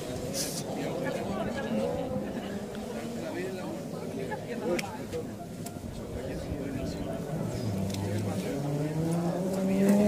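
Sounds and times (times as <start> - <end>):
rally car engine accelerating: 0.1 - 3.8, 6.7 - 10.0.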